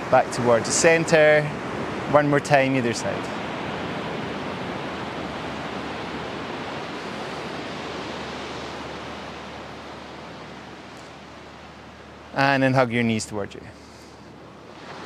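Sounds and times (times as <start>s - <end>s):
ocean surf on sandy beach: 0.0s - 15.0s.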